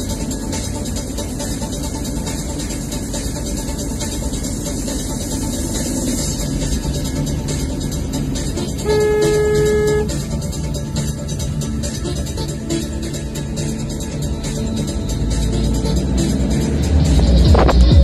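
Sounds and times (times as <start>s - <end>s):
background music: 0.0s - 18.0s
road noise of moving car: 0.0s - 18.0s
car horn blast: 8.7s - 10.3s.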